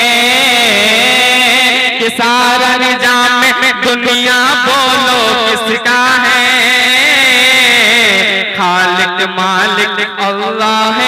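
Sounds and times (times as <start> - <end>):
man singing through microphone: 0.0 - 11.0.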